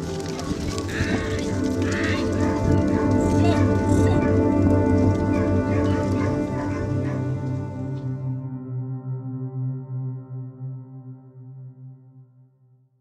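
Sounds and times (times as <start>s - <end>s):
background music with held tones: 0.0s - 12.8s
sheep bleating: 0.7s - 4.4s.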